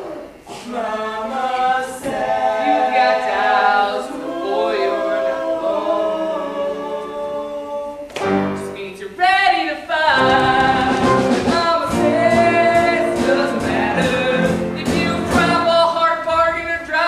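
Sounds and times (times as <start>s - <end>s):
group singing a held chord: 0.0s - 8.5s
band playing: 8.2s - 9.2s, 10.1s - 16.0s.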